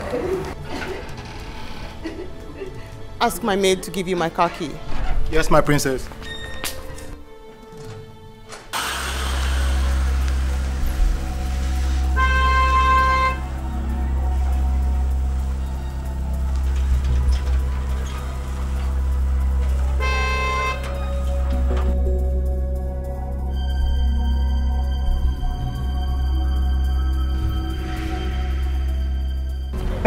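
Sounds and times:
background music with low drone: 0.0 - 30.0
car horn: 11.9 - 15.1, 19.5 - 21.9.

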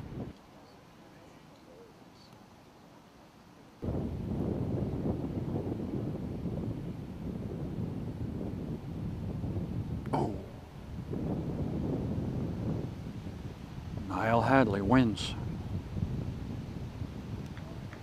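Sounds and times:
wind buffeting microphone: 0.0 - 0.4, 3.8 - 18.0.

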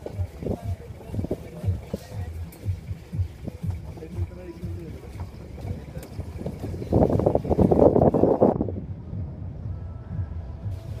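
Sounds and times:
wind buffeting phone microphone: 0.0 - 11.0.

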